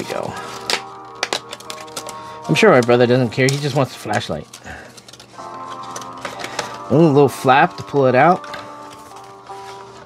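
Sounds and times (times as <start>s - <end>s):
packaging clicks: 0.1s - 7.1s, 7.7s - 10.0s
music of held tones: 5.3s - 10.0s.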